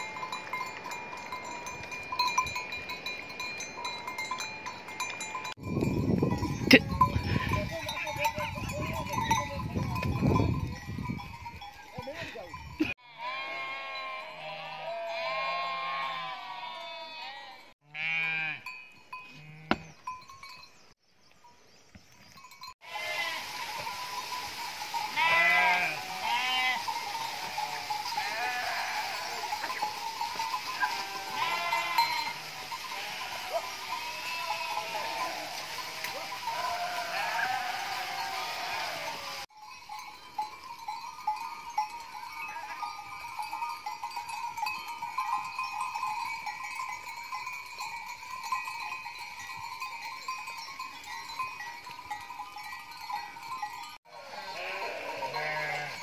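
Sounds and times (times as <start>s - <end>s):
sheep and goats bleating: 6.4s - 10.8s, 11.7s - 20.0s, 22.8s - 24.1s, 25.0s - 39.5s, 54.1s - 56.0s.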